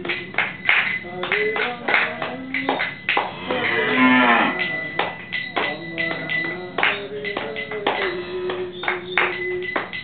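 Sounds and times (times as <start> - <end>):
hand claps: 0.0 - 3.4, 4.6 - 10.0
cow mooing: 3.3 - 4.9.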